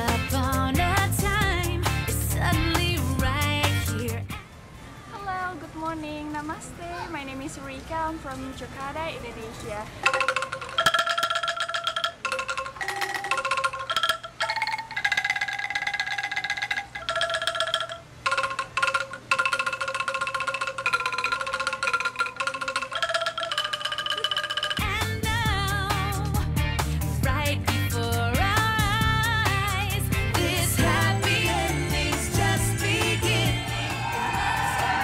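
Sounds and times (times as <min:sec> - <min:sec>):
pop music with heavy bass: 0:00.0 - 0:04.4, 0:24.8 - 0:35.0
bamboo angklung melody: 0:10.0 - 0:25.4, 0:30.3 - 0:35.0.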